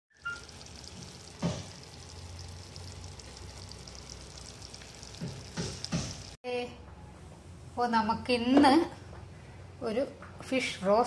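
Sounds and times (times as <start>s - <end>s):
fish sizzling in a pan: 0.1s - 6.4s.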